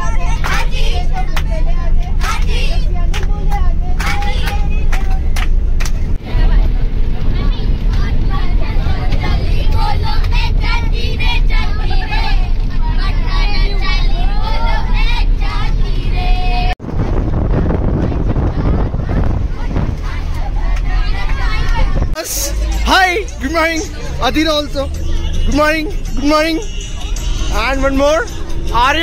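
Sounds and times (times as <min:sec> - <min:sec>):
children singing and chattering: 0:00.0 - 0:05.4, 0:06.2 - 0:29.0
bus engine rumble: 0:00.0 - 0:29.0
hand claps: 0:03.1 - 0:06.0.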